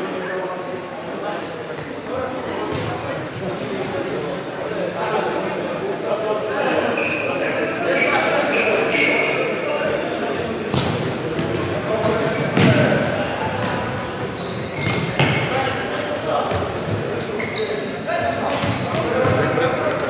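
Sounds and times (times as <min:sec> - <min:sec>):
sneakers squeaking: 0:01.6 - 0:03.6, 0:06.9 - 0:09.5, 0:10.4 - 0:20.0.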